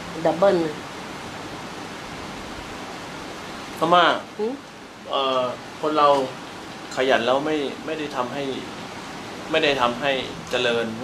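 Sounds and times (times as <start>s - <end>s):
steady background hiss: 0.0s - 11.0s
person speaking: 5.1s - 6.4s.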